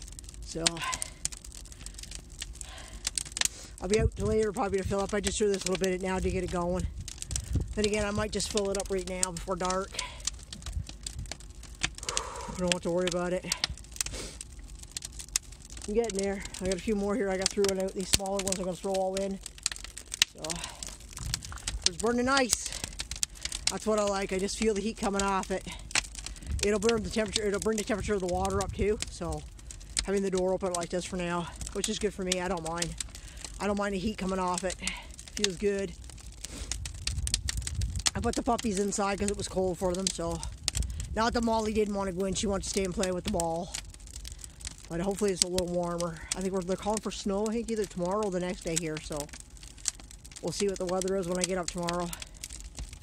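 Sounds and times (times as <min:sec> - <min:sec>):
low fire rumble: 0:00.0 - 0:53.0
wood fire crackling and popping: 0:00.0 - 0:53.0.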